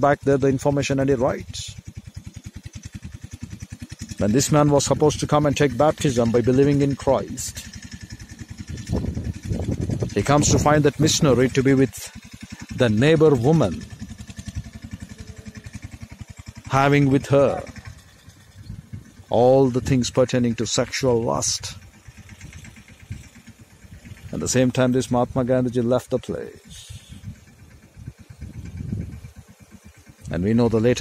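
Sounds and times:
engine running with rapid pulsing: 0:00.0 - 0:31.0.

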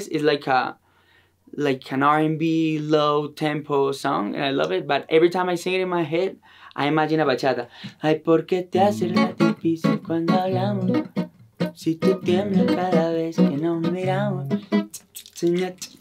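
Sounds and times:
man singing: 0:07.9 - 0:16.0
acoustic guitar picking: 0:08.8 - 0:15.0.

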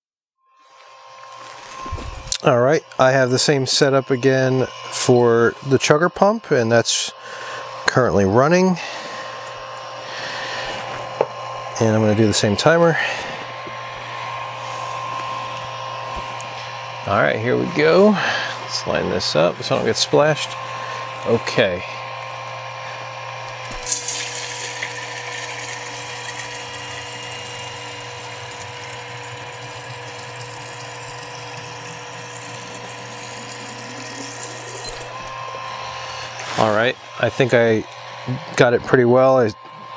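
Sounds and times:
electric pump motor hum: 0:00.6 - 0:39.9.

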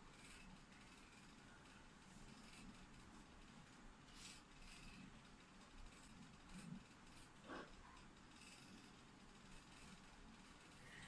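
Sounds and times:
small cooling fan whirring: 0:00.0 - 0:11.0.

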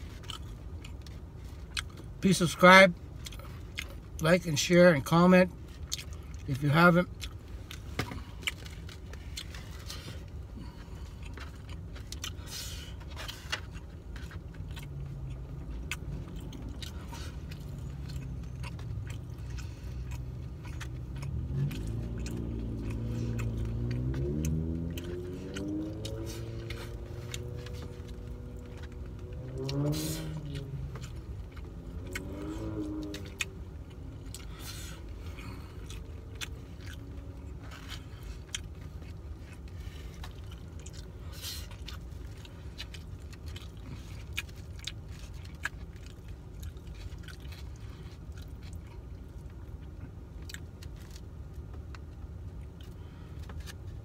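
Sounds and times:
person chewing food: 0:00.0 - 0:02.2, 0:03.1 - 0:04.2, 0:05.6 - 0:54.0
low steady rumble: 0:00.0 - 0:54.0.

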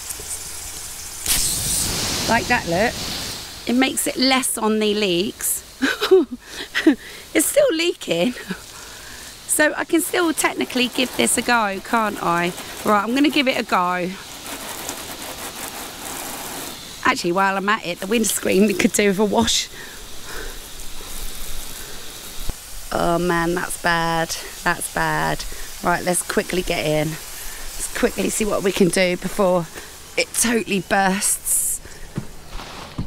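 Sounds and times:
hose nozzle spraying water: 0:00.0 - 0:33.0.

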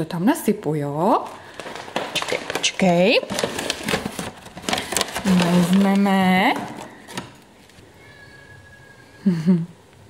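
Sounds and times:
plastic bag crinkling: 0:01.0 - 0:08.2.

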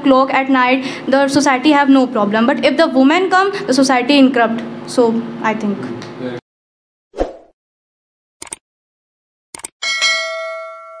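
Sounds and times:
quick clicks: 0:08.4 - 0:08.6, 0:09.5 - 0:09.7
bright bell ding: 0:09.8 - 0:11.0.

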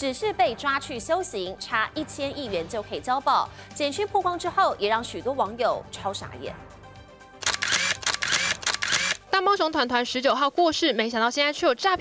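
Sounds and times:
camera shutter clicks: 0:07.4 - 0:09.2.

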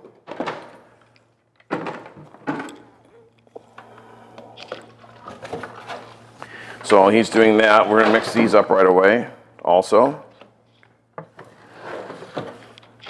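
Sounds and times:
plastic jugs knocking and clicking: 0:00.0 - 0:00.8, 0:01.6 - 0:02.8
low steady hum: 0:00.0 - 0:13.0.

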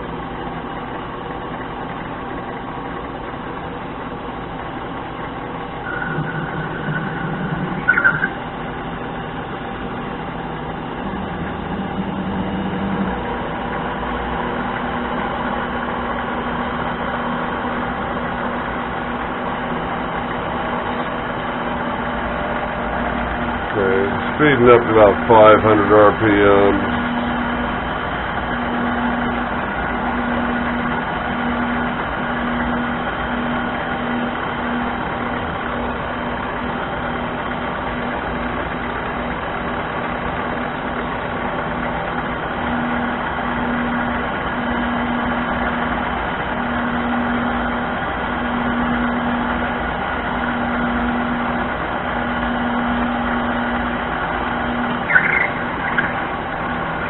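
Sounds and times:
lathe motor hum: 0:00.0 - 0:57.0
low pulsing tone: 0:05.6 - 0:15.2, 0:54.6 - 0:56.6
short high squeak: 0:05.9 - 0:08.4, 0:55.0 - 0:56.2.

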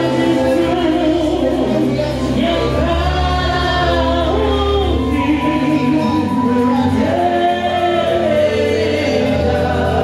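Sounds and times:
choir singing gospel: 0:00.0 - 0:10.0.

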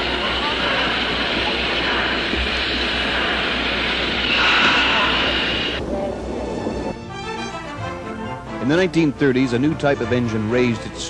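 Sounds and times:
steam locomotive hissing: 0:00.0 - 0:07.0.

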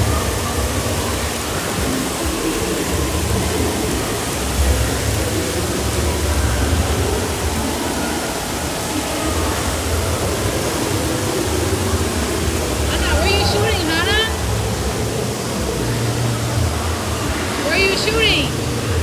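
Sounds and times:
falling and spraying water: 0:00.0 - 0:19.0.

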